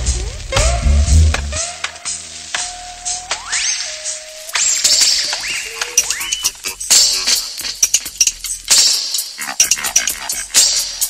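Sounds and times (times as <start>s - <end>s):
heavy bass line: 0.0s - 1.7s
dub reggae music: 0.0s - 11.0s
record hiss and clicks: 0.0s - 11.0s.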